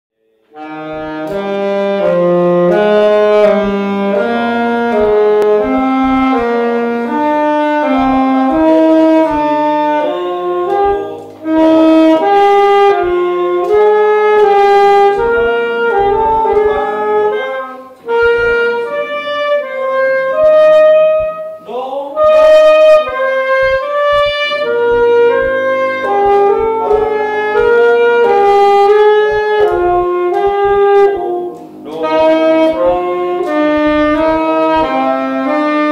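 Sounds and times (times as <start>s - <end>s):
saxophone melody: 0.4s - 35.9s.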